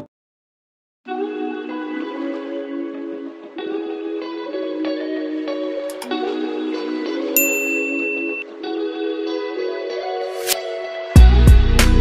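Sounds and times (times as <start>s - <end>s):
soft background music: 1.1s - 12.0s
electronic ding chime: 7.4s - 8.6s.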